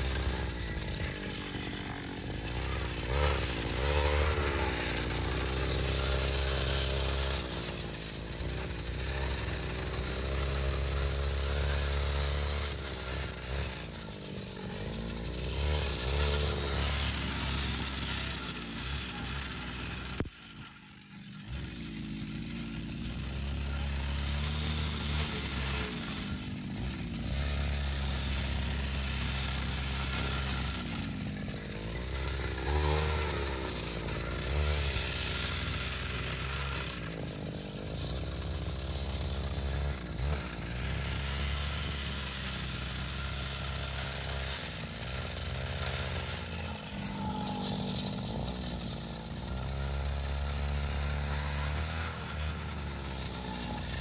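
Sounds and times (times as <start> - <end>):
brush cutter engine cutting grass: 0.0 - 54.0.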